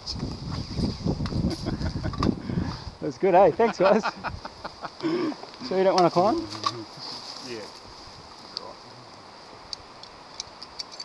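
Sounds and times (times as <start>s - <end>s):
steady high hiss: 0.0s - 11.0s
carabiner and rope clicks: 9.7s - 11.0s.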